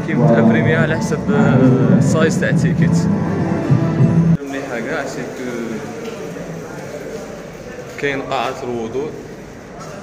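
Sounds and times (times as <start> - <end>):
indistinct voices: 0.0 - 7.5
room noise in a hall: 0.0 - 10.0.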